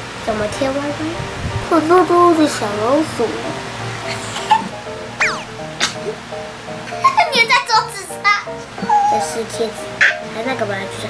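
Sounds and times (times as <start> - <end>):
background music: 0.6 - 11.0
child's high-pitched voice: 7.1 - 11.0.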